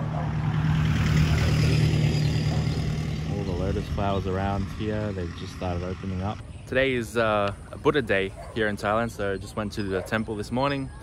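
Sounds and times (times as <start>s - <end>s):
engine running low hum: 0.0s - 8.1s.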